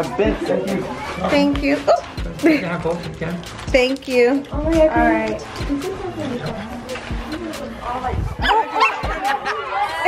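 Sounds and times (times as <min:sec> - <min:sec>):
dog barking: 0:08.4 - 0:09.1.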